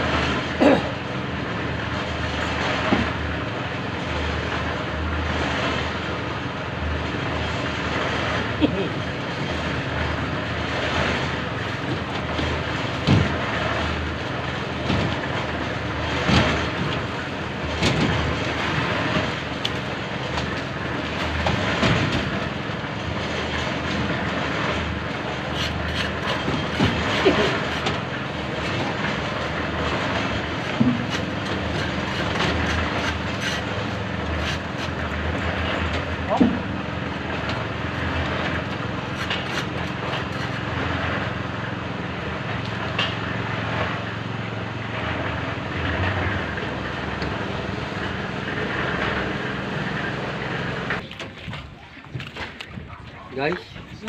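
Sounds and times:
steady machine noise: 0:00.0 - 0:54.0
knocks and clatter: 0:10.9 - 0:44.2.

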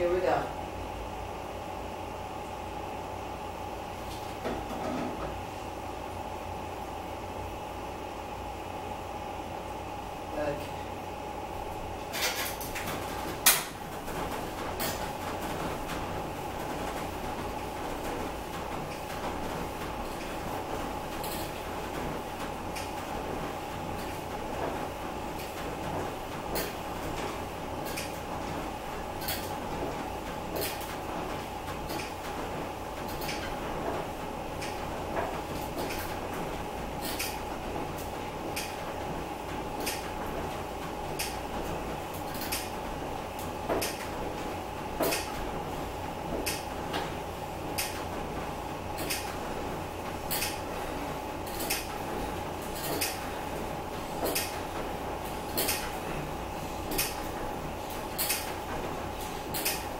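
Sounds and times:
steady hum: 0:00.0 - 0:59.9
elliptical trainer clicking and creaking: 0:51.4 - 0:53.3.

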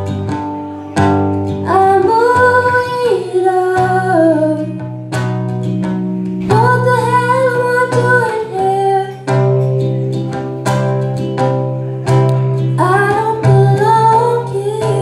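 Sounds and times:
acoustic guitar strumming: 0:00.0 - 0:15.0
woman singing: 0:01.0 - 0:05.1, 0:06.4 - 0:09.8, 0:12.6 - 0:15.0.

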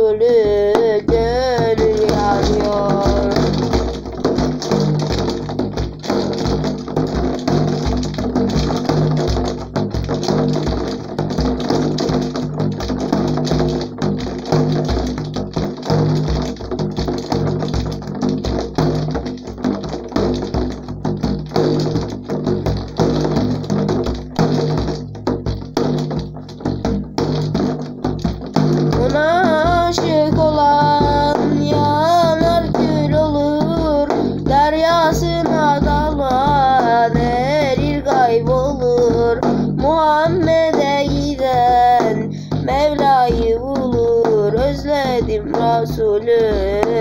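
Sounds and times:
frame drum beating: 0:00.0 - 0:47.0.

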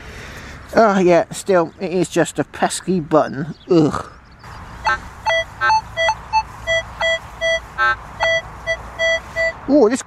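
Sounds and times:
metal detector beeping: 0:04.9 - 0:09.7.

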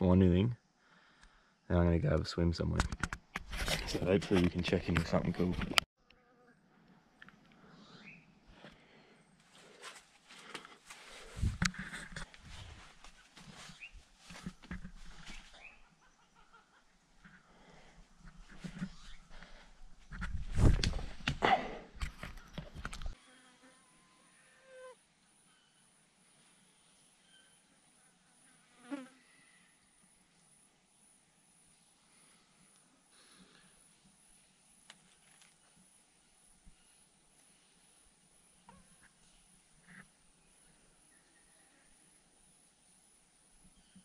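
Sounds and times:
footsteps over rocks and leaves: 0:09.4 - 0:15.7
bird chirps: 0:15.2 - 0:16.7.

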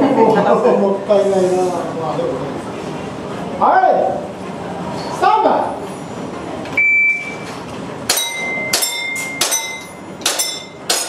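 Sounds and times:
shot timer beep: 0:06.8 - 0:07.4, 0:08.3 - 0:10.0
pellet ringing on steel plate: 0:08.1 - 0:11.0.

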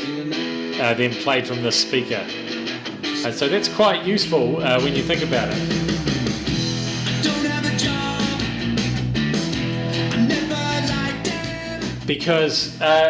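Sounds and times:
pop-rock song from a speaker: 0:00.0 - 0:13.0.

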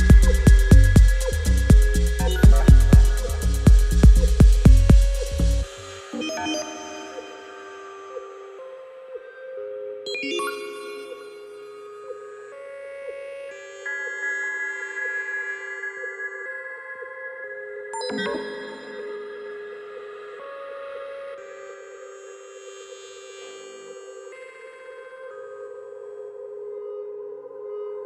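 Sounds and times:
electronic track kick drum and bass: 0:00.0 - 0:05.7
held synth notes and chords: 0:00.0 - 0:28.0.

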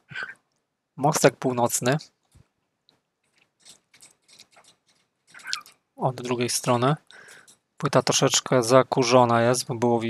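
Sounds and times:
faint clicks and handling noise: 0:01.8 - 0:07.6.

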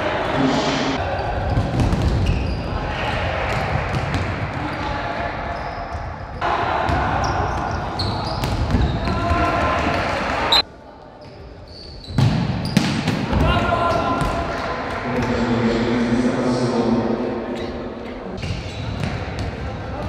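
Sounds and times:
shoes squeaking on court floor: 0:01.2 - 0:02.6, 0:05.6 - 0:06.4, 0:07.2 - 0:09.2, 0:11.2 - 0:12.9, 0:17.6 - 0:19.5
players shouting: 0:06.4 - 0:10.6.

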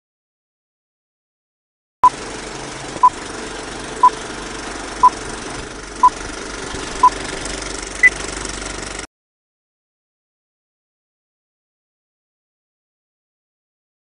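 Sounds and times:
steady rattle and hiss: 0:02.1 - 0:09.0.

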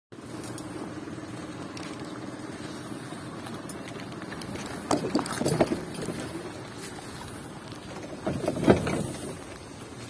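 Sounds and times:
sidecar road rumble: 0:00.1 - 0:10.0.

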